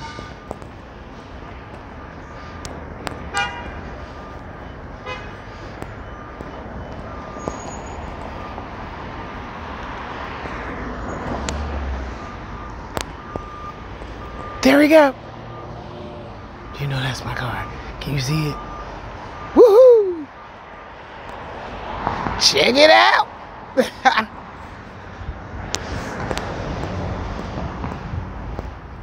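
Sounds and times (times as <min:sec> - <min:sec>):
street traffic noise: 0:00.0 - 0:29.0
vehicle passing: 0:00.0 - 0:29.0.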